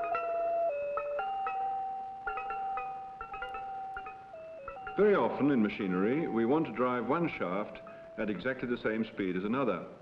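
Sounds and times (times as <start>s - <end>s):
chiming struck notes: 0.0s - 8.4s
slow melody of sustained tones: 0.0s - 8.4s.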